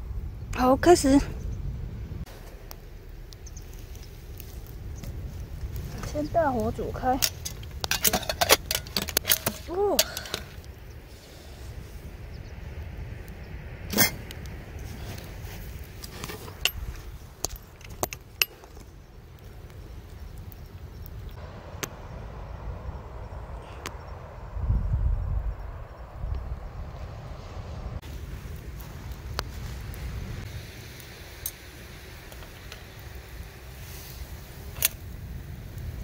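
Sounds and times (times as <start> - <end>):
wind rumble on microphone: 0.0 - 36.0
wood fire crackling and popping: 2.2 - 11.0, 13.1 - 22.0, 28.0 - 36.0.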